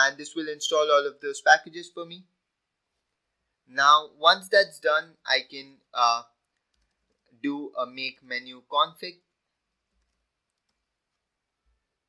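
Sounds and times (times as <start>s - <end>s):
keyboard keys clicking: 6.7s - 7.2s, 9.8s - 10.9s.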